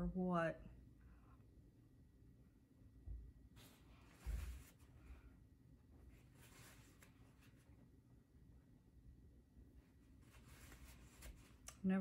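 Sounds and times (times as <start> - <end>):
faint soft rustles: 3.5 - 8.1, 9.7 - 12.0.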